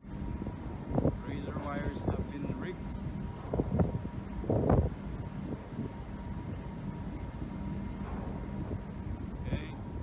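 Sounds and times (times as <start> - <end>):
ship rumbling: 0.0 - 10.0
wind buffeting microphone: 0.0 - 10.0.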